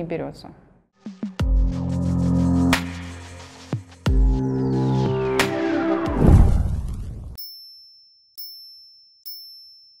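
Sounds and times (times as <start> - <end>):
electronic falling sweep: 4.4 - 7.4
low boom: 6.1 - 7.4.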